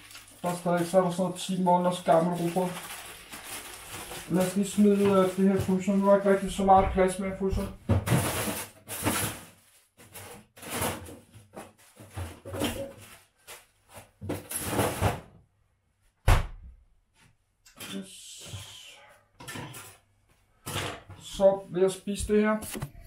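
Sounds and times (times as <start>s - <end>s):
rustling: 1.8s - 6.2s.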